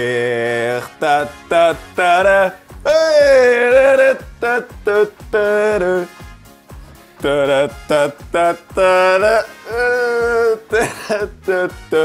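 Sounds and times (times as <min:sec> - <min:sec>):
man singing: 0:00.0 - 0:06.3, 0:07.2 - 0:12.0.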